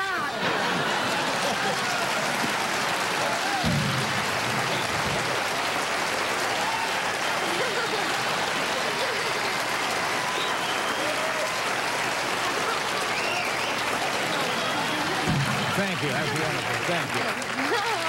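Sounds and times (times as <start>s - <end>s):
studio audience applauding: 0.0s - 18.0s
voices calling out: 0.0s - 18.0s
low thud: 3.6s - 5.4s, 15.3s - 15.8s.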